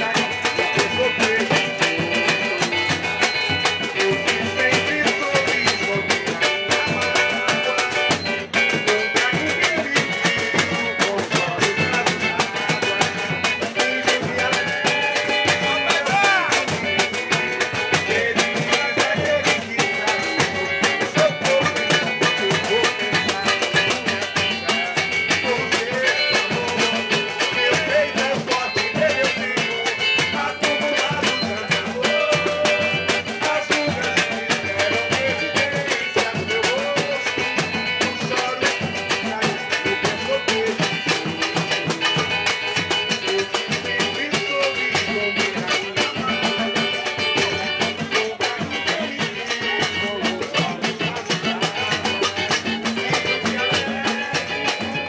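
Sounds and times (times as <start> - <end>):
drums in driving rhythm: 0.0 - 55.0
strummed small guitar: 0.0 - 55.0.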